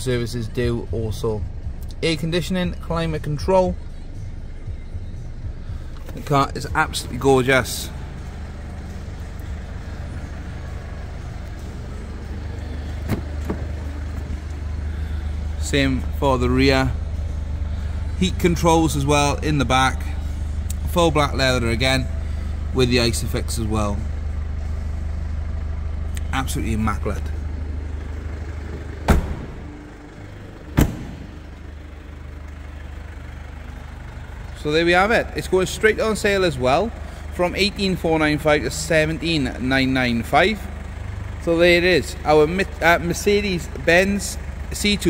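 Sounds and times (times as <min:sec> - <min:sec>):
diesel engine idling: 0:00.0 - 0:45.0
car door slams: 0:13.0 - 0:13.9, 0:29.0 - 0:29.8, 0:30.7 - 0:31.5.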